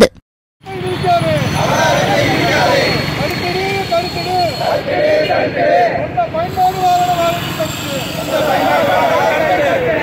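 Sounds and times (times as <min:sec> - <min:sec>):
people's voices overlapping: 0:00.6 - 0:10.0
traffic rumble: 0:00.6 - 0:10.0.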